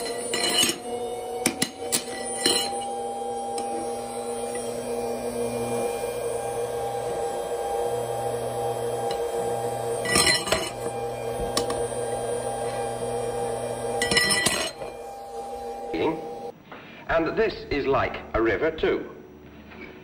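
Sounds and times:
electrical hum with whine: 0:00.0 - 0:20.0.

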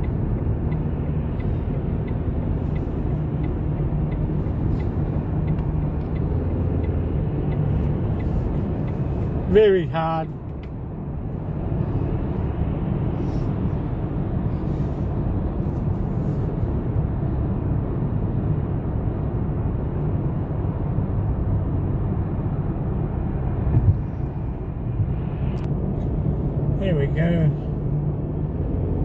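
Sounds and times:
car road noise: 0:00.0 - 0:29.0.

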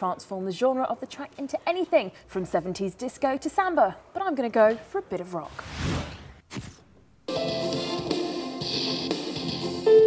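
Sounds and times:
drums: 0:07.3 - 0:10.0
rhythm guitar: 0:07.3 - 0:10.0.

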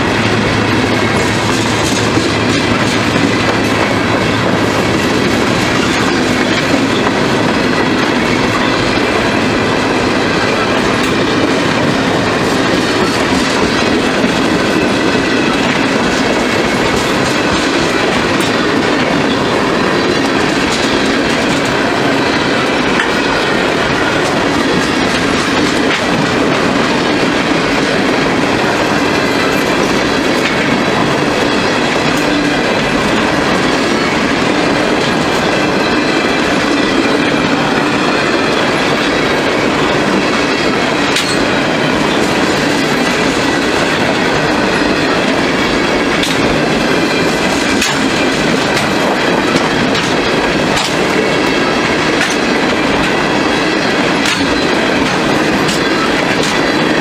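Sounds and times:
train wheels rumbling on rail: 0:00.0 - 0:57.0
wheels clicking over rail joints: 0:00.1 - 0:57.0.

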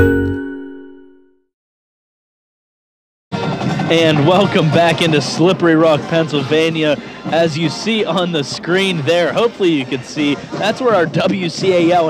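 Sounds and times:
jingle chord ringing: 0:00.0 - 0:01.4
stadium crowd noise: 0:03.3 - 0:12.0
man talking: 0:03.9 - 0:12.0.

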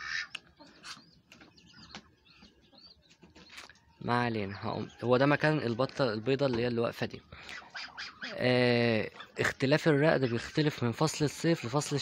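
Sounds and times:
bird chirps: 0:00.0 - 0:12.0.

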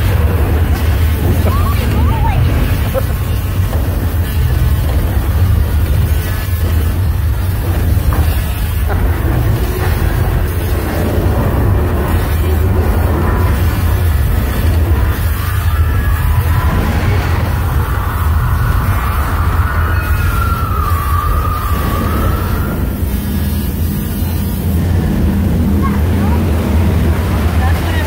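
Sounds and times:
low earthquake rumbling: 0:00.0 - 0:28.0
wavering whine: 0:00.0 - 0:28.0.

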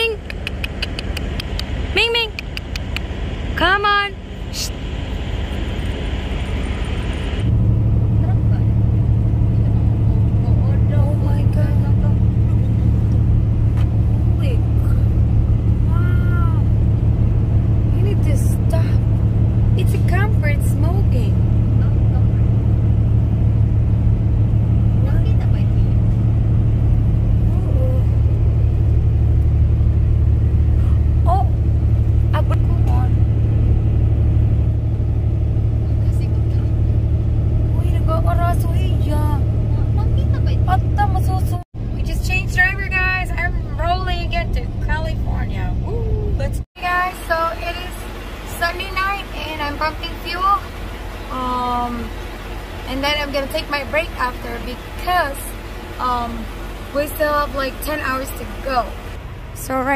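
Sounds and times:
truck engine and road noise: 0:00.0 - 0:59.9.

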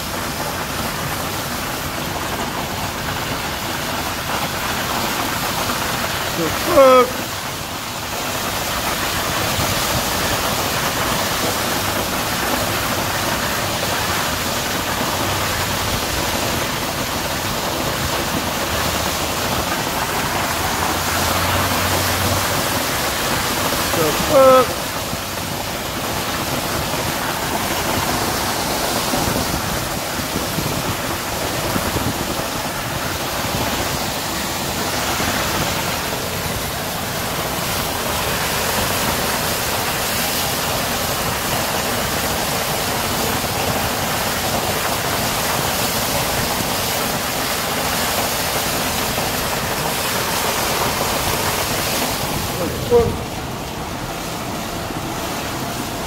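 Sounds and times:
water gushing onto gravel: 0:00.0 - 0:56.0.

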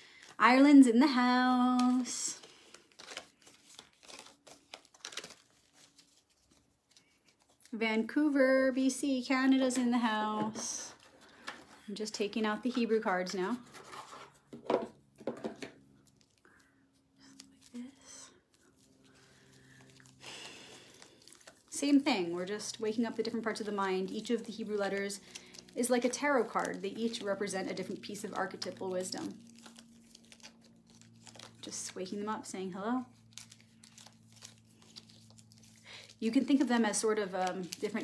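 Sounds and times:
cards rustling: 0:00.0 - 0:07.8, 0:10.5 - 0:32.2, 0:33.2 - 0:38.0
low steady hum: 0:00.0 - 0:38.0.

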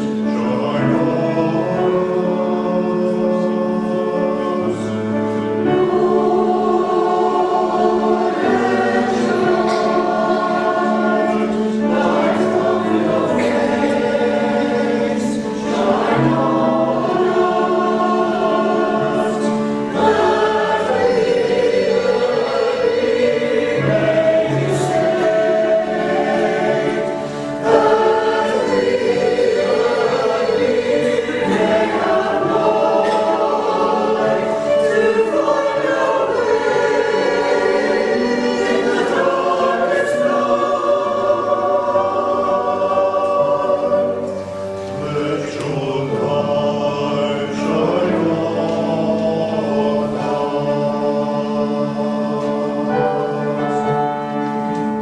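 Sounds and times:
choir singing in harmony: 0:00.0 - 0:55.0.

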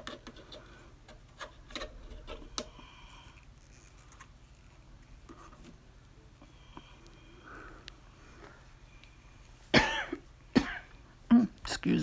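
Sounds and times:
woman coughing: 0:09.7 - 0:10.9.

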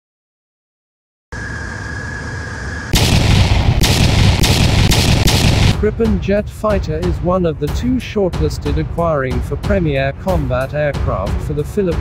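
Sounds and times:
jet engines from aircraft cabin: 0:01.3 - 0:05.8.

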